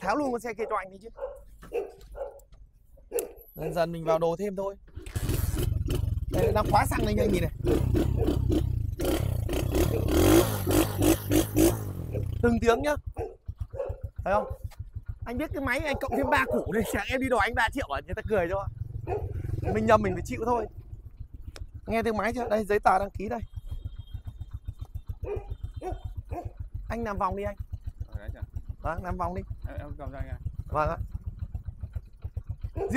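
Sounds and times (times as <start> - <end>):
motorcycle engine idling: 0.0 - 32.9
dog barking: 0.5 - 3.9, 6.4 - 6.7, 8.0 - 8.4, 9.8 - 10.2, 12.1 - 14.7, 15.8 - 17.2, 19.0 - 20.8, 25.2 - 26.7, 32.7 - 32.9.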